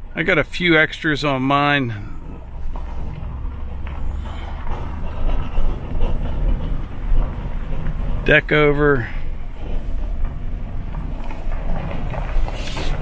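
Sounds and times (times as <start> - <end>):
pickup and trailer rumbling on gravel: 0.0 - 13.0.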